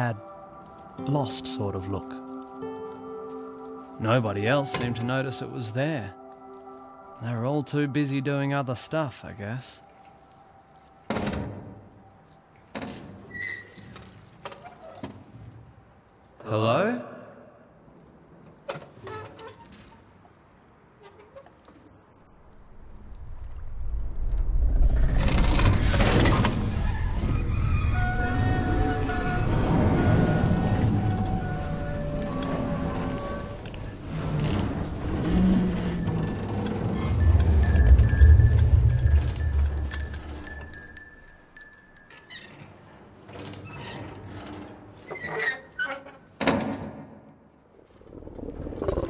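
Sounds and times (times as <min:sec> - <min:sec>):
deep rumble: 0:22.7 - 0:41.0
high chime-like ringing tones: 0:31.3 - 0:43.0.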